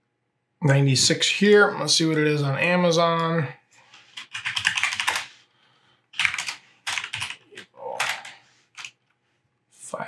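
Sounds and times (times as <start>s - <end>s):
typing on computer keyboard: 4.1s - 5.3s, 6.1s - 9.0s.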